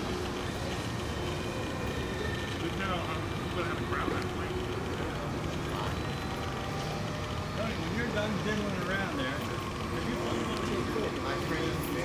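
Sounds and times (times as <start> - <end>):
faint voices: 0.0 - 12.0
model airplane engine drone: 0.0 - 12.0.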